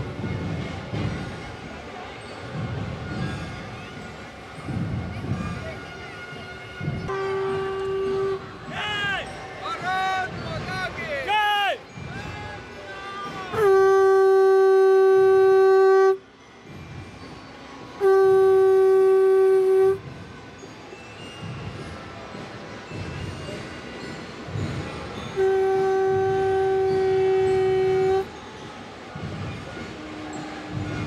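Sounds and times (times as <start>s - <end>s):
conch shell blasts: 7.1s - 8.8s, 13.6s - 16.2s, 18.0s - 20.0s, 25.3s - 28.3s.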